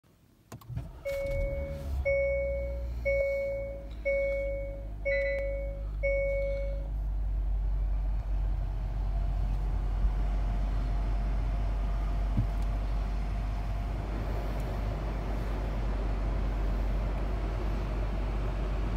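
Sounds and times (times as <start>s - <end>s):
car engine idling: 0.6s - 18.9s
car ice-warning chime beeps: 0.9s - 6.9s.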